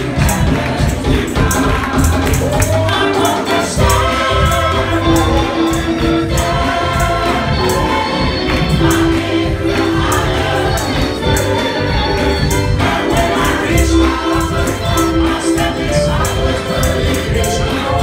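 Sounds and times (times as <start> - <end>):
gospel choir singing: 0.0 - 18.0
instrumental backing with bass: 0.0 - 18.0
percussion beat: 0.0 - 18.0.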